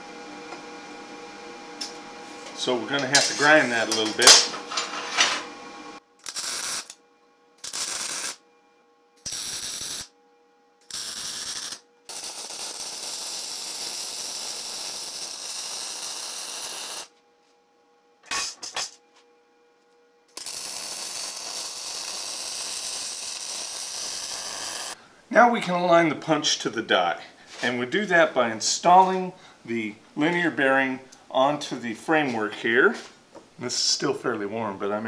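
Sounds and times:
arc welding crackling hiss: 0:02.6 - 0:04.8, 0:06.2 - 0:07.0, 0:07.6 - 0:08.4, 0:09.2 - 0:10.1, 0:10.8 - 0:17.1, 0:20.4 - 0:25.4.

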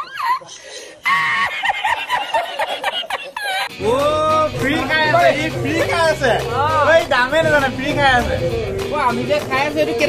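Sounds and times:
man laughing hard: 0:00.0 - 0:03.8.

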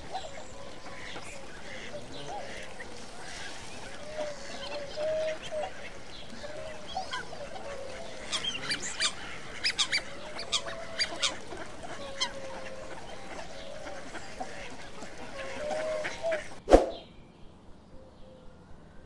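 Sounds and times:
ducks calling: 0:00.0 - 0:16.6.

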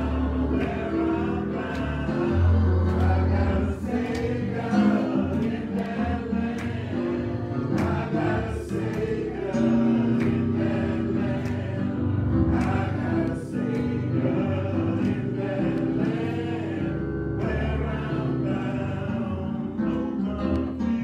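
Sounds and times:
group singing gospel song: 0:00.0 - 0:21.0
sustained keyboard chords: 0:00.0 - 0:21.0.

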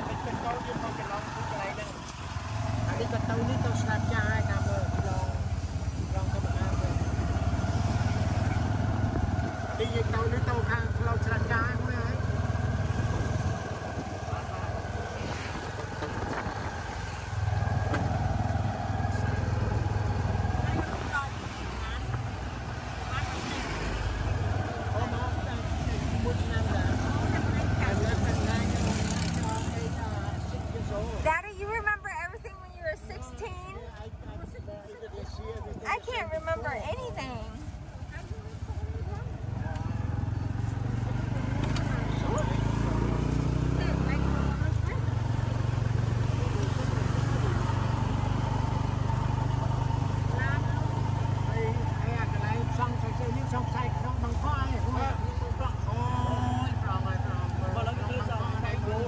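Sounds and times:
motorbike engine humming: 0:00.0 - 0:59.0
road and wind noise: 0:00.0 - 0:59.0.

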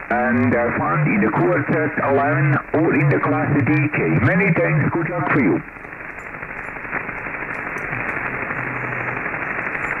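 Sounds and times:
radio receiver hiss: 0:00.0 - 0:10.0.

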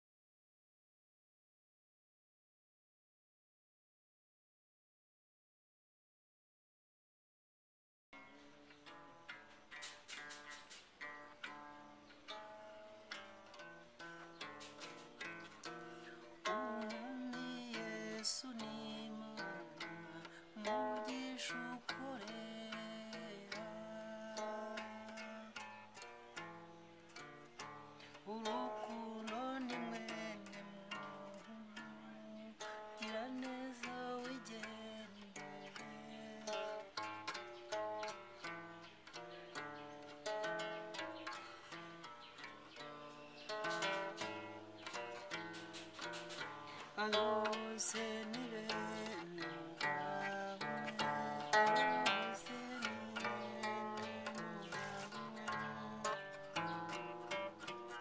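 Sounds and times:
plucked trough zither: 0:08.2 - 0:58.0
person singing: 0:14.4 - 0:26.5, 0:27.1 - 0:58.0.

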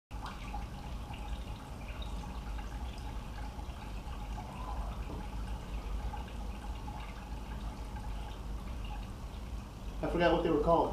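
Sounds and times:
steady low hum: 0:00.1 - 0:10.9
water trickling and dripping: 0:00.1 - 0:10.9.

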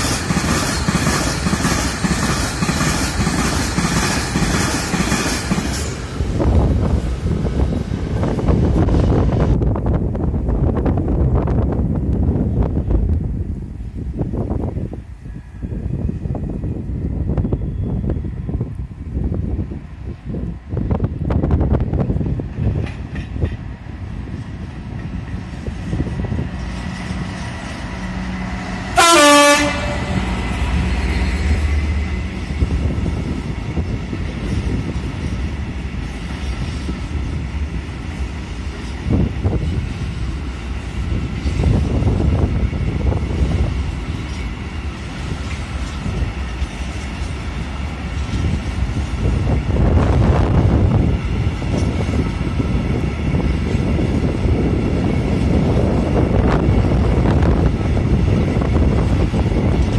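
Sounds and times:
diesel locomotive engine running: 0:00.0 - 0:59.9
train wheels rumbling: 0:00.0 - 0:59.9
locomotive horn blast: 0:29.0 - 0:30.4.

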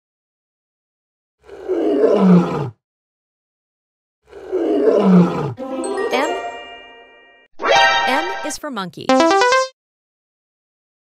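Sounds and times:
lion roaring: 0:01.4 - 0:02.8, 0:04.3 - 0:05.6.

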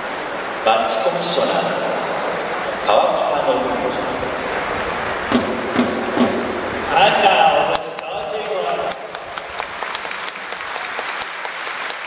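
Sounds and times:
stadium crowd murmur: 0:00.0 - 0:12.0
drum beats: 0:05.3 - 0:06.8.

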